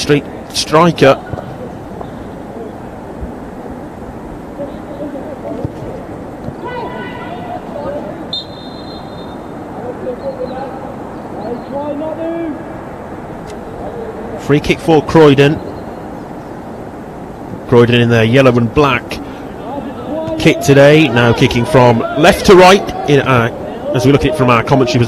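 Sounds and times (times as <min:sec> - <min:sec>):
distant players shouting: 0:04.7 - 0:14.4, 0:19.4 - 0:25.0
referee's whistle blast: 0:08.3 - 0:09.4.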